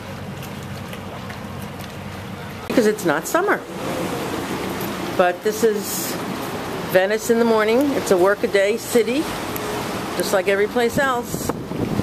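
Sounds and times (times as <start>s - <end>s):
boat engine hum: 0.0s - 12.0s.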